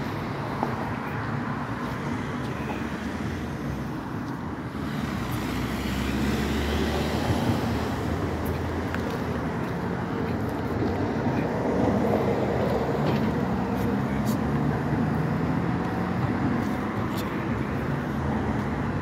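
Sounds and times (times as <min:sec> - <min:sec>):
road traffic passing: 0:00.0 - 0:19.0.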